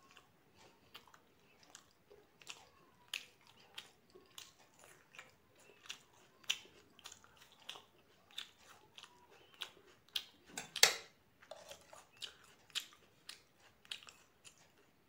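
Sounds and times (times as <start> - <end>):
wet mouth chewing clicks: 0.0 - 15.0.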